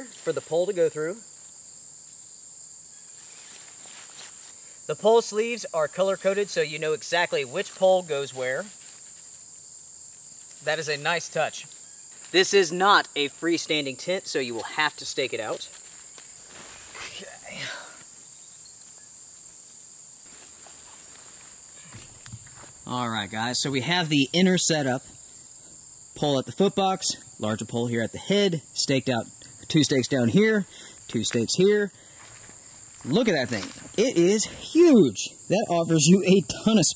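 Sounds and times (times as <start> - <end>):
insects trilling: 0.0 - 36.9.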